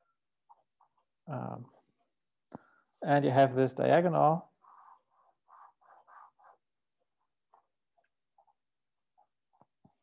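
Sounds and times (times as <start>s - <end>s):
marker drawing on paper: 0.3s - 1.2s, 4.4s - 10.0s.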